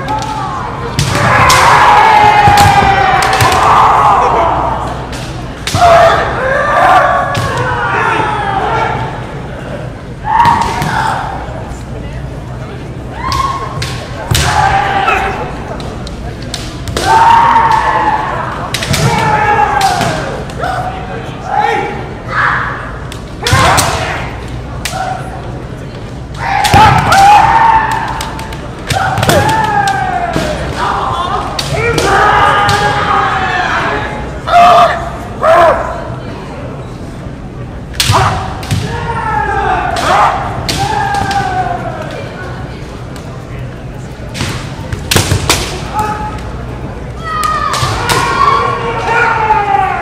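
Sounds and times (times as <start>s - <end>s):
people shouting battle cries: 0.1s - 4.9s, 5.7s - 9.2s, 14.3s - 15.6s, 17.0s - 22.8s, 26.4s - 35.9s, 38.1s - 42.1s, 47.2s - 50.0s
bamboo swords striking: 44.4s - 46.2s.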